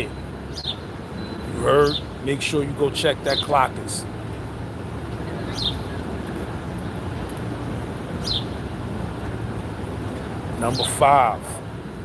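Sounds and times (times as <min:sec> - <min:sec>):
bird chirps: 0:00.0 - 0:02.2, 0:05.1 - 0:07.0, 0:08.2 - 0:08.6
low rumble of street traffic: 0:00.0 - 0:12.0.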